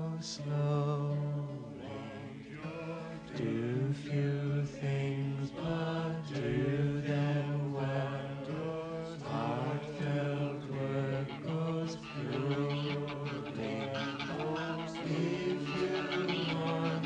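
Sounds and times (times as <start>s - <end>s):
person singing slow melody: 0.0s - 17.0s.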